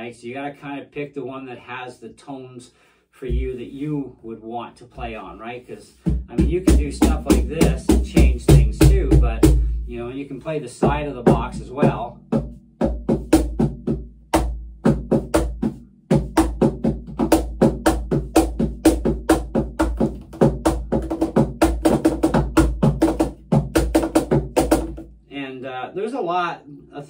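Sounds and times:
cajon played by hand: 6.0s - 9.8s, 10.8s - 25.1s.

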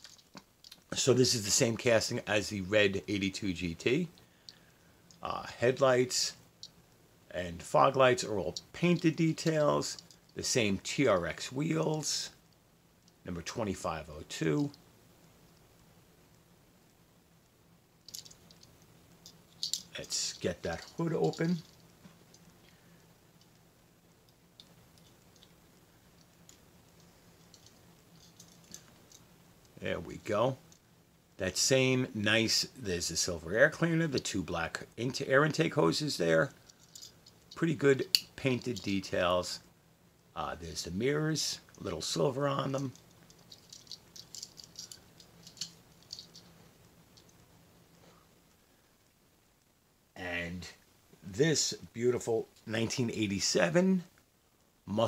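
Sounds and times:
toy car clicks and rattles: 18.1s - 20.0s, 36.7s - 38.9s, 42.8s - 46.5s.

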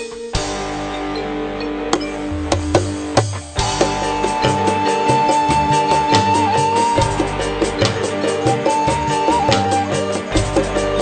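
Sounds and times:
guitar: 0.0s - 11.0s
bass notes: 0.4s - 11.0s
steady drum beat: 2.0s - 11.0s
bamboo flute high note: 3.8s - 7.6s, 8.4s - 11.0s.

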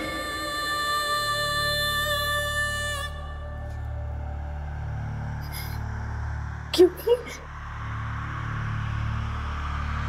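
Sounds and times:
low droning music: 0.0s - 10.0s.

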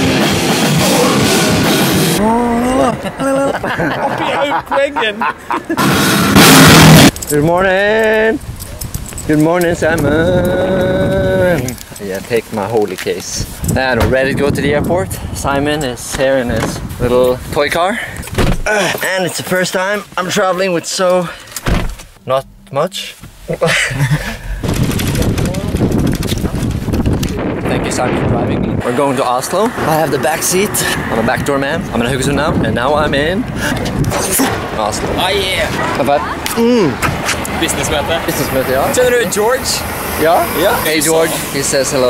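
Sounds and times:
heavy rock band playing: 0.0s - 2.3s
people's voices: 0.0s - 6.2s, 9.2s - 21.3s, 27.2s - 42.0s
wind buffeting microphone: 7.0s - 18.6s, 24.1s - 36.4s.

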